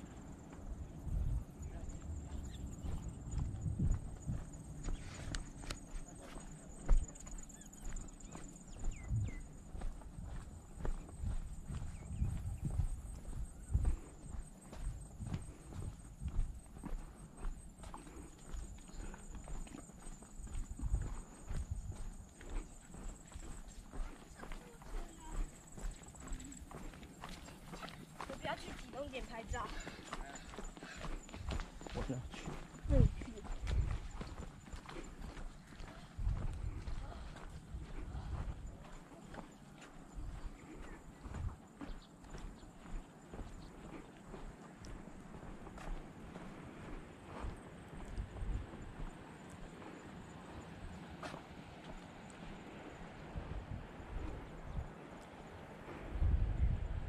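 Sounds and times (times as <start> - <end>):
footsteps on pavement: 0.0 - 56.1.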